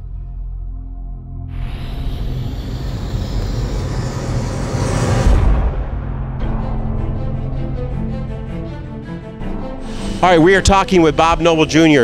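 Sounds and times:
low music bed: 0.0s - 12.0s
rising whoosh: 1.5s - 9.2s.

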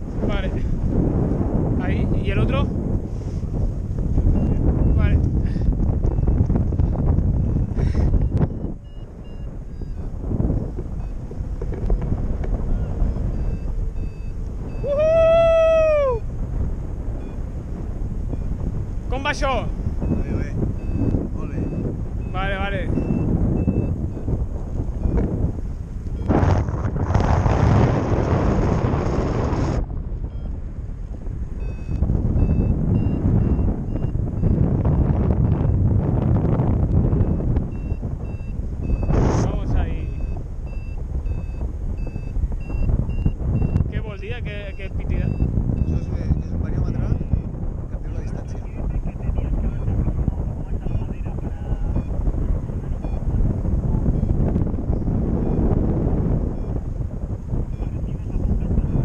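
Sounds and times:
airflow buffeting microphone: 0.0s - 59.0s
short high beeps: 4.3s - 5.1s, 7.5s - 10.1s, 13.3s - 14.9s, 20.0s - 24.3s, 31.6s - 35.8s, 37.2s - 39.3s, 40.0s - 43.9s.

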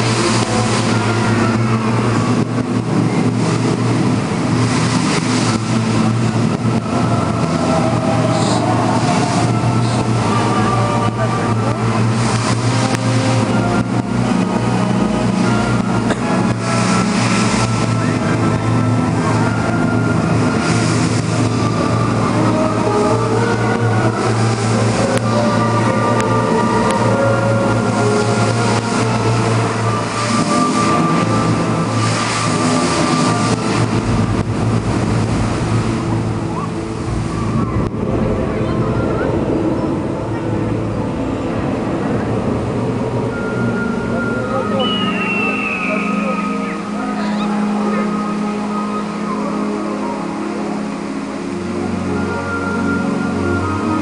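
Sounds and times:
fountain water rushing: 0.0s - 54.0s
music in sustained notes: 0.0s - 54.0s.

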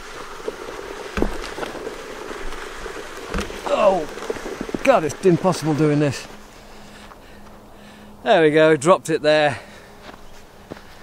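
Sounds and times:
spiked footsteps on frozen grass: 0.0s - 8.2s, 9.6s - 11.0s.

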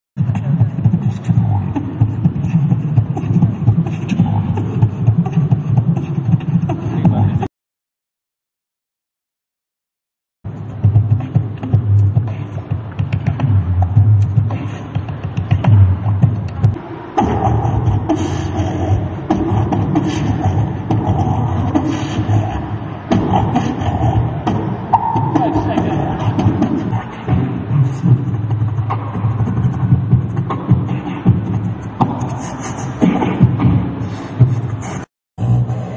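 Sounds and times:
beatboxing into microphone: 0.2s - 7.5s, 10.5s - 35.9s.

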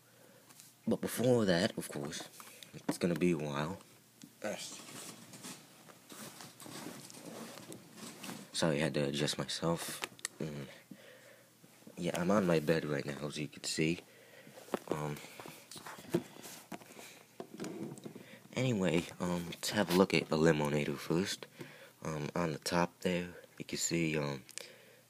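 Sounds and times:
faint rustling: 1.8s - 8.8s, 9.7s - 20.8s
bedding rustling: 4.6s - 8.7s.

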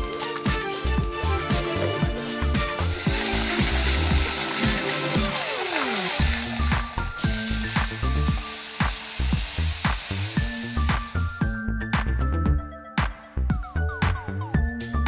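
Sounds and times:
hot oil sizzling and spattering: 0.0s - 11.5s
background music with steady beat: 0.0s - 15.0s.

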